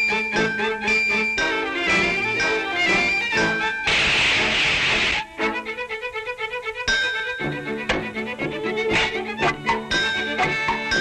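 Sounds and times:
orchestral cartoon music: 0.0s - 11.0s
loud steam hiss: 3.9s - 5.3s.

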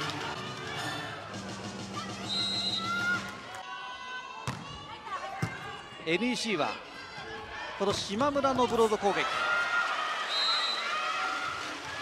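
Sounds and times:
volleyball struck: 4.4s - 4.8s
crowd cheering: 8.7s - 12.0s.

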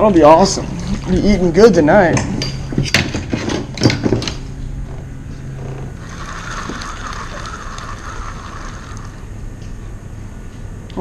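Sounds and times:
low steady hum: 0.0s - 11.0s
fishing reel gears whirring: 4.8s - 9.6s.

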